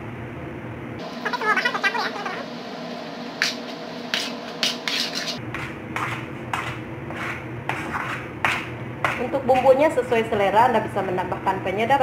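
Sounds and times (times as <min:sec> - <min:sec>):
steady low hum: 0:00.0 - 0:12.0
metal spoon scraping a pan: 0:03.4 - 0:09.7.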